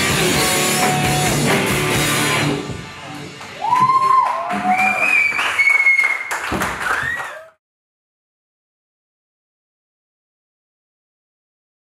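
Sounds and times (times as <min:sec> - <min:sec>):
rock band music: 0:00.0 - 0:05.0
audience applauding and cheering: 0:03.1 - 0:07.6
sliding whistles: 0:03.8 - 0:07.5.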